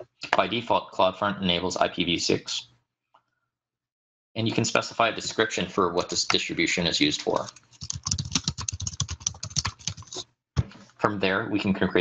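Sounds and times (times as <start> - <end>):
computer keyboard typing: 7.2 - 10.2.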